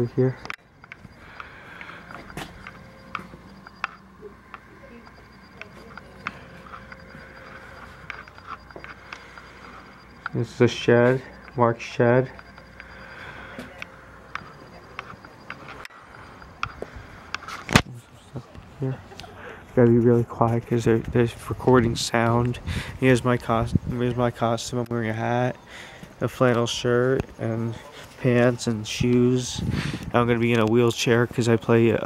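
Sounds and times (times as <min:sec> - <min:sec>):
faint steady hum: 0:00.0 - 0:32.0.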